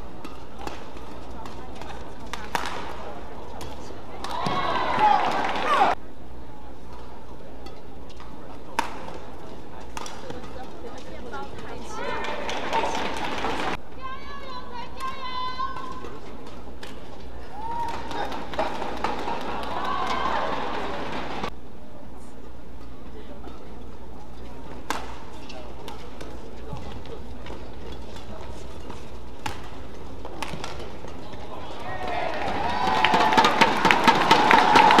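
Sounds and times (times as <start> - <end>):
racket striking shuttlecock: 0.2 - 2.9, 9.9 - 11.1, 24.8 - 26.4, 27.4 - 31.1
shouted voices: 4.2 - 6.0, 11.8 - 16.0, 17.4 - 21.5, 31.5 - 35.0
crowd clapping and cheering: 4.7 - 6.0, 12.0 - 13.8, 17.6 - 21.5, 31.9 - 35.0.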